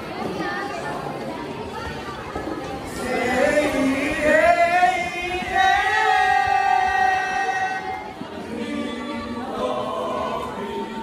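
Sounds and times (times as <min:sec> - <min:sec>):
choir singing: 0:02.9 - 0:11.0.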